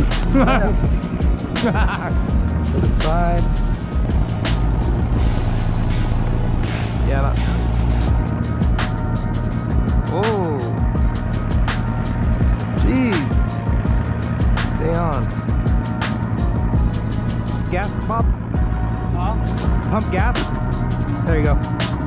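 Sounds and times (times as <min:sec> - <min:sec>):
steady low hum: 0:00.0 - 0:21.8
background music with steady beat: 0:00.0 - 0:22.0.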